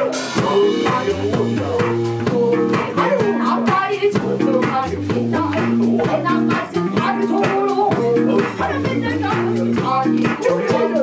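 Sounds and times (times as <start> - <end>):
drum kit beating: 0.0 - 11.0
electric bass guitars: 0.0 - 11.0.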